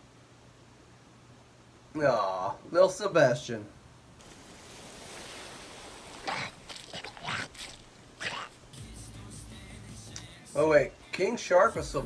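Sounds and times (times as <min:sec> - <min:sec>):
soft hiss: 0:00.0 - 0:12.0.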